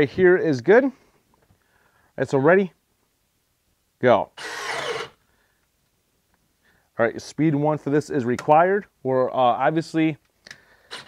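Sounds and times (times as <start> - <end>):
cordless drill boring into wood: 4.4 - 5.2.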